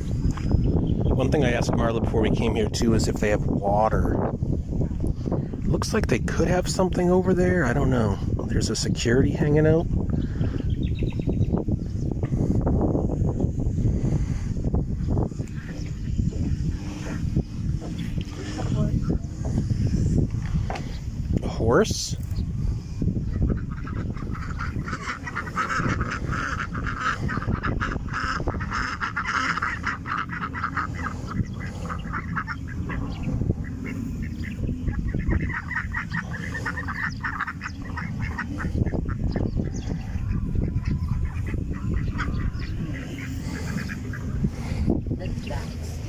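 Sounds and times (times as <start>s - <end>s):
ducks quacking loudly: 13.8s - 20.2s, 23.1s - 46.0s.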